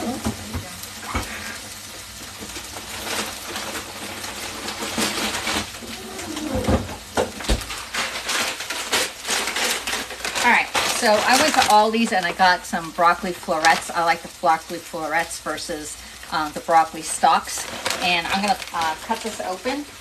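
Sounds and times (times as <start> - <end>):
chicken sizzling in skillet: 0.0 - 20.0
kitchen clatter and rustling: 0.0 - 20.0.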